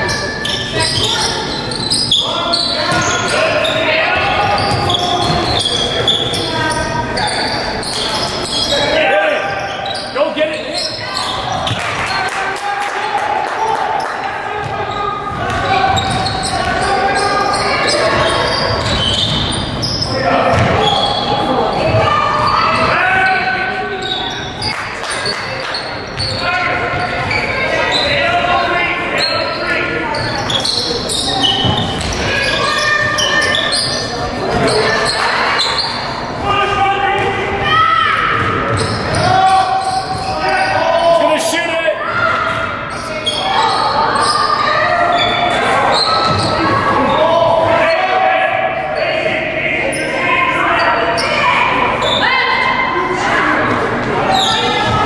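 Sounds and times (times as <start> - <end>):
players and spectators calling out: 0.0 - 55.0.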